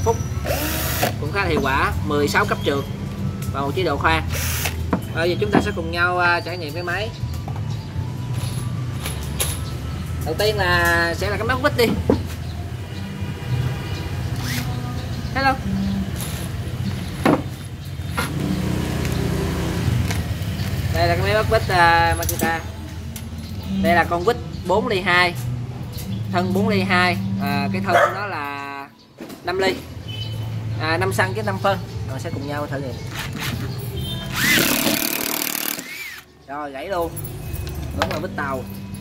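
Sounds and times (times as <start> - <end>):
road traffic rumble: 0.0 - 39.0
cordless screwdriver motor whine: 0.4 - 1.2, 14.4 - 14.7, 34.4 - 36.2.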